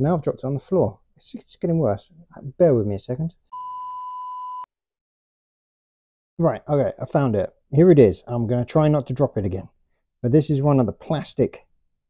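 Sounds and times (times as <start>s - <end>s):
pure test tone beep: 3.5s - 4.7s.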